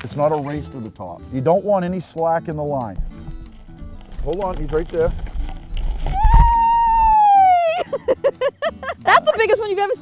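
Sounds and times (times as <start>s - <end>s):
woman squealing with excitement: 6.1s - 8.0s
bursts of laughter: 7.6s - 9.1s.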